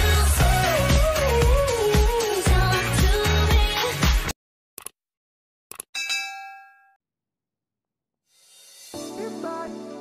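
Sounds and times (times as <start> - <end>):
bright bell ding: 6.0 - 7.0.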